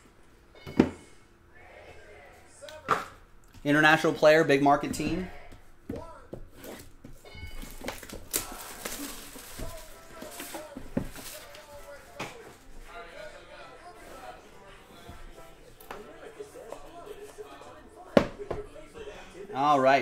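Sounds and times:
shrink wrap crinkling: 7.5s - 13.0s.

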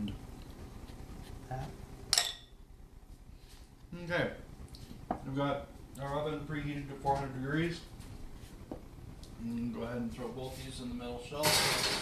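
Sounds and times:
glass dish clinking: 2.1s - 2.5s.

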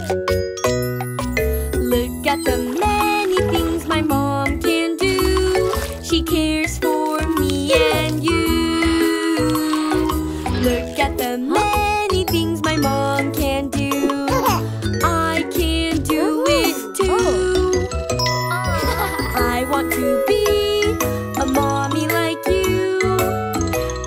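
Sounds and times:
bouncy accompaniment with bell-like tones: 0.0s - 5.7s, 11.9s - 24.0s
person singing: 1.8s - 17.8s, 19.0s - 23.4s.

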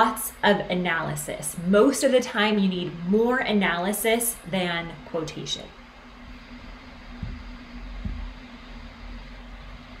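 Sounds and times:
low hum: 2.7s - 10.0s
soft low thumps: 6.2s - 8.6s.

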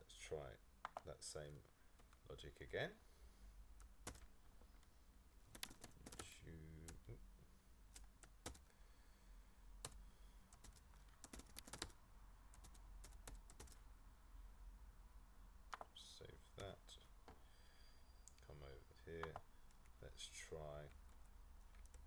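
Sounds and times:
computer keyboard keys clicking: 4.1s - 4.3s, 5.5s - 6.2s, 8.0s - 8.7s, 10.6s - 12.0s, 12.6s - 13.8s.

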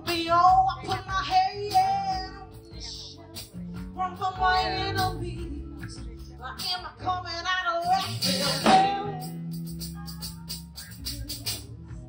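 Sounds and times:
women singing: 0.0s - 9.4s
drums: 0.0s - 12.0s
electric bass: 0.0s - 12.0s
keyboard: 0.0s - 12.0s.

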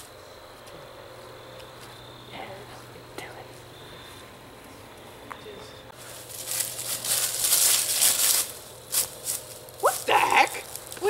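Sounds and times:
crashing through dry leaves: 6.0s - 11.0s
rising vocal cry: 9.8s - 10.8s.

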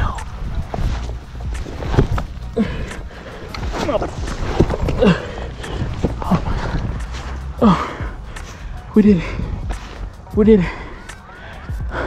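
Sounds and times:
man grunting and breathing hard: 2.5s - 4.2s, 4.8s - 12.0s.

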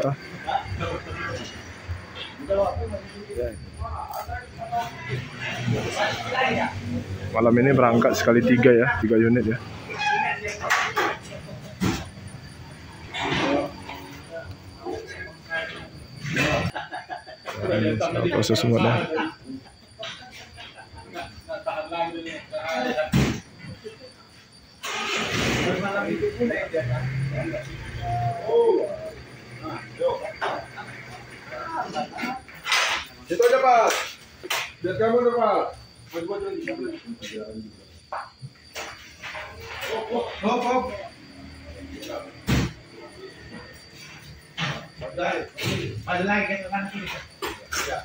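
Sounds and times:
people speaking: 0.0s - 12.0s, 13.2s - 24.1s, 25.1s - 34.2s, 34.8s - 48.0s
people talking in background: 0.0s - 48.0s.

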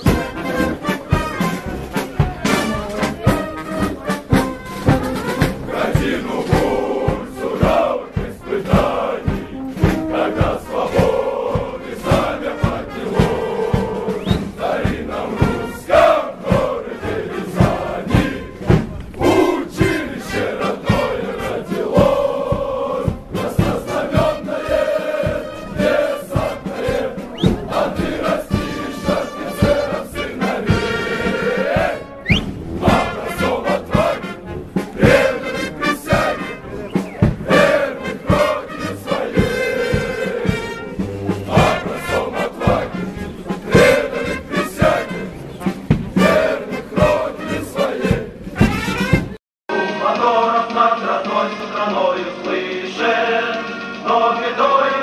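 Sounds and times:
male chorus singing: 0.0s - 3.4s, 5.0s - 48.7s, 49.7s - 55.0s
marching beat: 0.0s - 53.0s.

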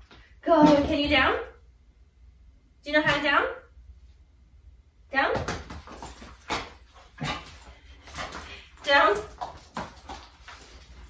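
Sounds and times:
puppy paws tapping and clicking: 5.4s - 11.0s.

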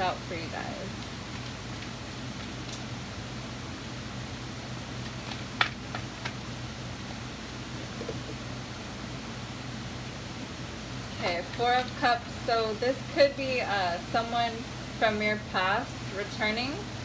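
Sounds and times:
electric fan humming: 0.0s - 17.0s.

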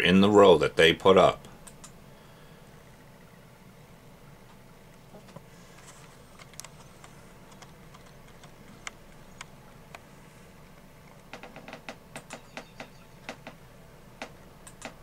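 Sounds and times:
computer keys clicking: 1.6s - 2.0s, 6.4s - 9.5s, 12.2s - 13.6s, 14.2s - 15.0s.

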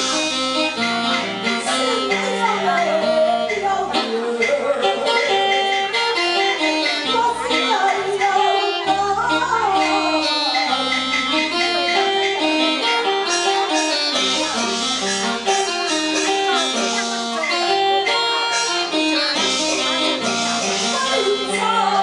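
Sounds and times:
instrumental accompaniment: 0.0s - 22.0s
woman singing opera aria: 1.6s - 5.5s, 6.4s - 10.9s, 20.9s - 22.0s.

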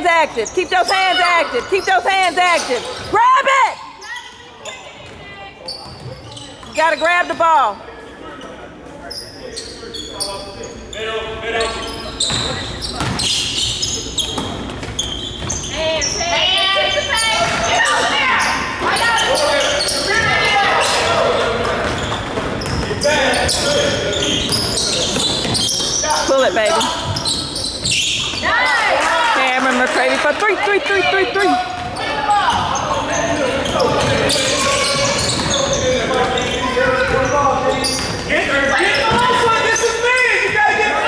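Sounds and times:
voices calling out: 11.6s - 41.0s
basketball bouncing on hardwood: 31.8s - 32.7s.

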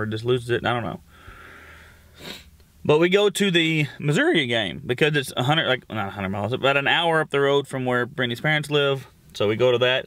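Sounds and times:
man sniffing through nose: 1.2s - 2.6s.

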